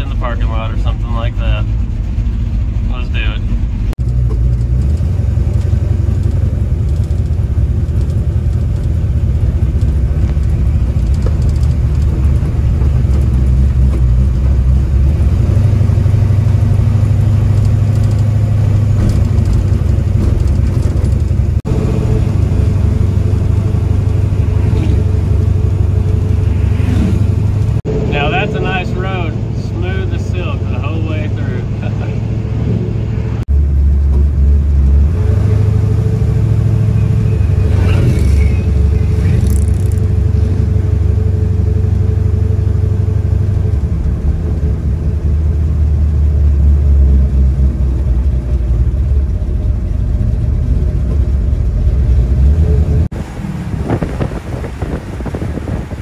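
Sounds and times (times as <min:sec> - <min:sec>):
truck engine and road noise: 0:00.0 - 0:56.0.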